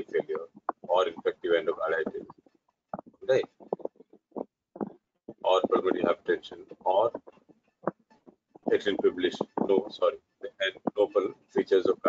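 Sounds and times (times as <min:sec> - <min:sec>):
person talking: 0:00.0 - 0:02.3, 0:03.0 - 0:04.0, 0:04.8 - 0:07.4, 0:08.6 - 0:12.0.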